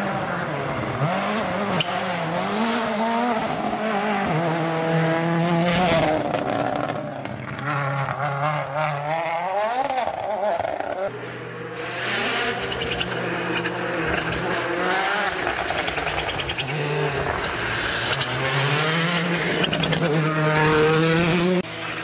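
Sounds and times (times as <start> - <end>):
rally car engine revving: 0.0 - 22.0
second rally car engine: 0.0 - 22.0.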